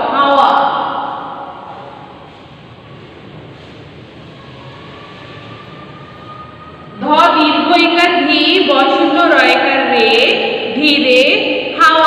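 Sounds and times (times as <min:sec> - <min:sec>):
steady hiss and rumble: 0:00.0 - 0:11.8.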